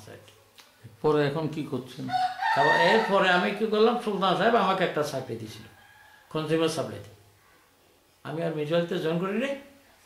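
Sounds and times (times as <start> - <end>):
man speaking: 0.9 - 7.1, 8.2 - 9.8
rooster crowing: 2.1 - 3.5, 5.7 - 6.3.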